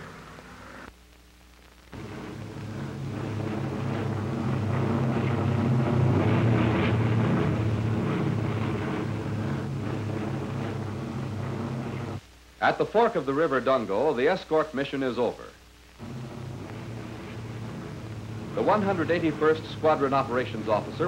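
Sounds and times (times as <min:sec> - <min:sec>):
propeller aircraft engines droning: 0:02.0 - 0:12.2, 0:16.0 - 0:21.0.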